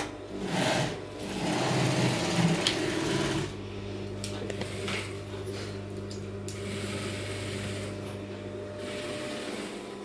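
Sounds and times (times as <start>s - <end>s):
sewing machine stitching fabric: 0.0s - 3.6s
steady machine hum: 0.0s - 10.0s.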